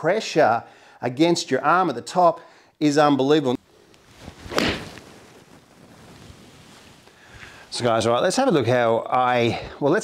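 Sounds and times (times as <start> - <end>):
golf club swishing through air: 3.6 - 7.8.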